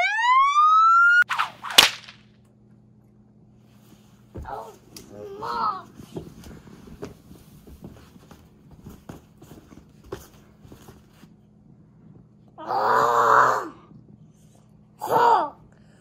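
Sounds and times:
stuffed toys rustling: 0:04.2 - 0:11.3
child yelling: 0:04.5 - 0:05.9.

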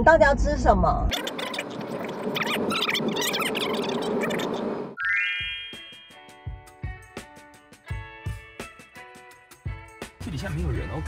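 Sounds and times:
sped-up squeaky chattering voices: 0:01.1 - 0:05.0.

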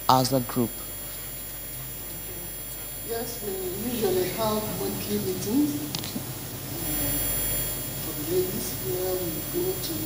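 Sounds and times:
rumbling background noise with hiss: 0:00.0 - 0:10.0.

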